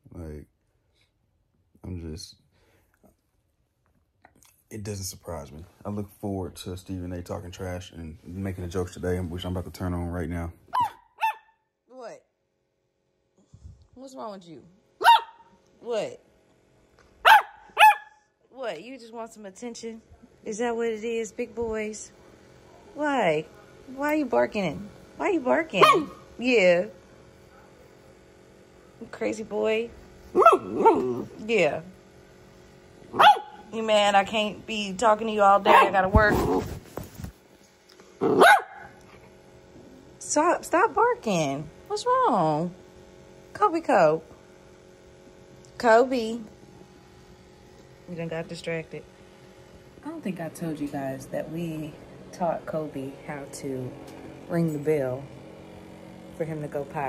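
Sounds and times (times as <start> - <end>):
small dog barking: 10.7 - 11.6, 15.0 - 15.5, 17.2 - 18.2, 25.8 - 26.3, 30.3 - 31.3, 33.1 - 33.7, 35.6 - 36.2, 38.2 - 39.0.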